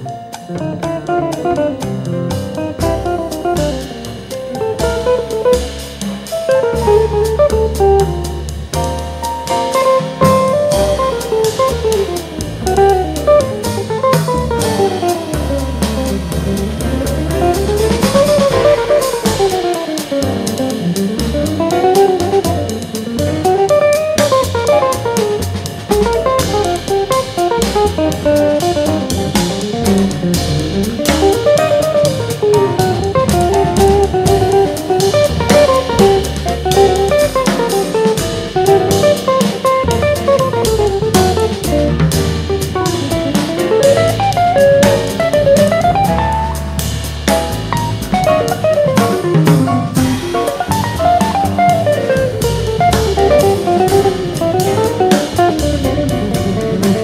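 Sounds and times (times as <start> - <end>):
drum kit cymbals: 0.0 - 57.0
walking upright bass: 0.0 - 57.0.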